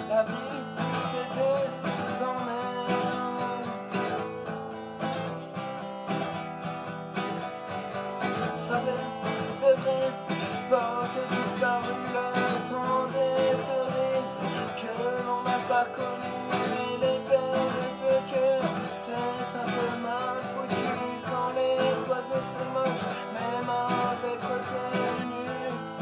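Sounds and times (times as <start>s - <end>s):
man singing: 0.0s - 4.3s, 8.2s - 26.0s
acoustic guitar strumming: 0.0s - 26.0s.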